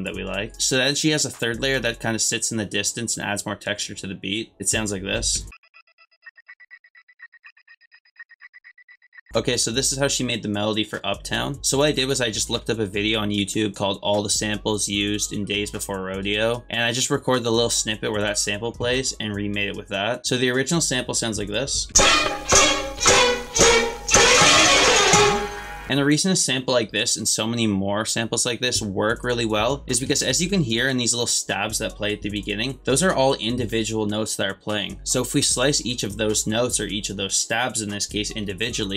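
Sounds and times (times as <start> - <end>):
pitched chord stabs: 22.0 - 25.9
rapid stutter of short pitched notes: 22.0 - 25.9.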